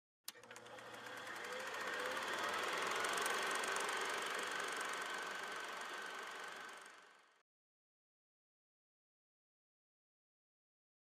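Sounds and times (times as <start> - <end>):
machine-like whirring with ticking: 0.3 - 7.4.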